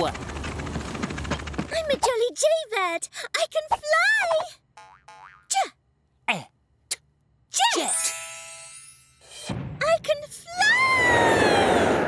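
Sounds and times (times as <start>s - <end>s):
cartoon boing falling in pitch: 4.8s - 5.5s.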